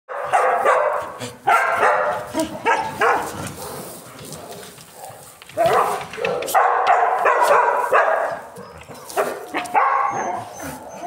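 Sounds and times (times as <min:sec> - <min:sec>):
dog barking and yelping: 0:00.1 - 0:04.0, 0:04.9 - 0:11.0.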